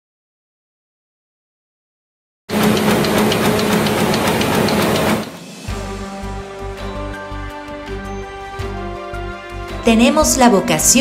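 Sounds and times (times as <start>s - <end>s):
printing press clattering: 2.5s - 5.4s.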